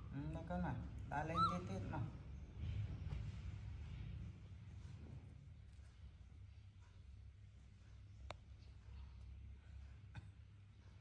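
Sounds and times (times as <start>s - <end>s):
baby monkey whimpering squeak: 1.3s - 1.7s.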